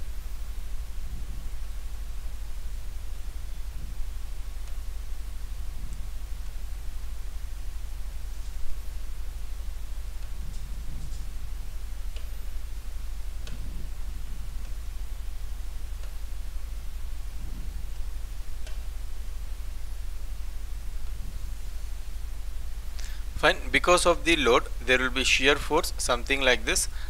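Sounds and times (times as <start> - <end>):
low electrical hum with hiss: 0.0 - 27.0.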